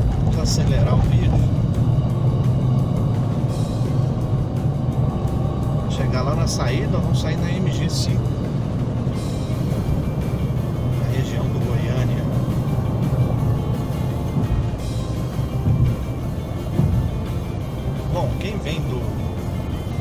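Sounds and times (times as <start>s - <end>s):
car engine rumble: 0.0s - 20.0s
music playing: 0.0s - 20.0s
road noise inside car: 0.0s - 20.0s.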